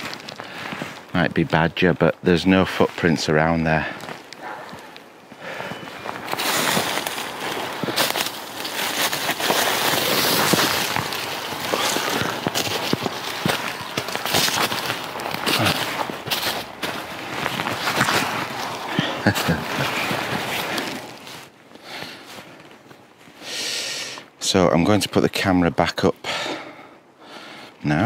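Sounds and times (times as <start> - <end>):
brittle stems crackling: 0.0 - 1.8, 2.6 - 23.3
footsteps crunching through snow: 0.0 - 23.5.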